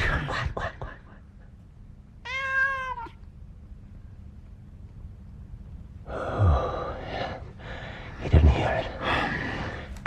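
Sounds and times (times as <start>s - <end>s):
cat meowing: 2.2s - 3.3s.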